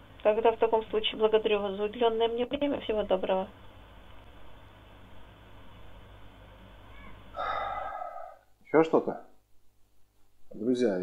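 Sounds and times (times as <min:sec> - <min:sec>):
brief breathy sound: 0:07.4 - 0:08.5.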